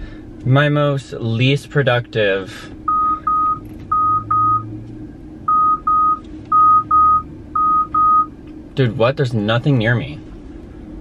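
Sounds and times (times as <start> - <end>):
parking sensor beeping: 2.9 - 4.7, 5.4 - 8.3.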